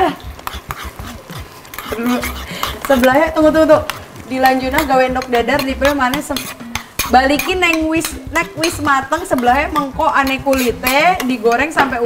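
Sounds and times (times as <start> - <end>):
frying pan sizzling: 0.0 - 12.0
spoon stirring sauce in bowl: 0.2 - 12.0.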